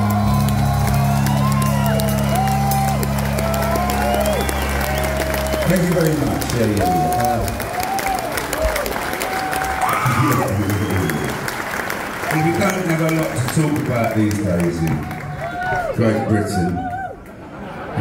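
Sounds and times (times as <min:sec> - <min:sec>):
audience cheering and whooping: 0:00.0 - 0:18.0.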